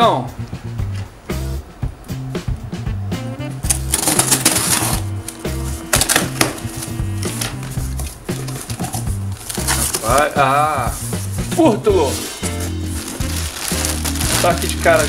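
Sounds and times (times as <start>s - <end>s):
background music with bass line: 0.0s - 15.0s
scissors cutting packing tape: 3.7s - 5.0s, 6.0s - 10.3s, 13.1s - 15.0s.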